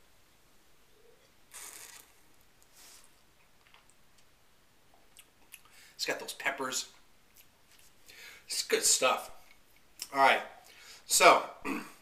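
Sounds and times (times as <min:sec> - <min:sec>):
man sipping wine: 0:01.0 - 0:03.2
breathy hiss of air: 0:01.5 - 0:03.2, 0:08.1 - 0:08.5, 0:10.7 - 0:11.1.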